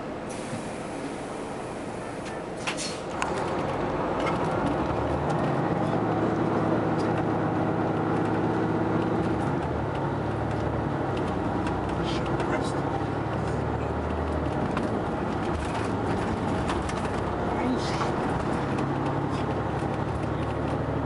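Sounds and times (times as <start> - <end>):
diesel coach engine drone: 0.0 - 21.0.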